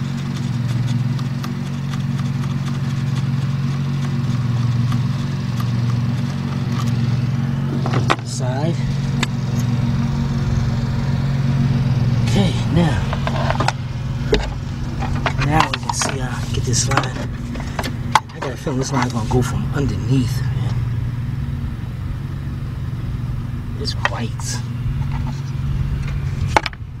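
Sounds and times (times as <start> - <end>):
vehicle engine idling: 0.0 - 27.0.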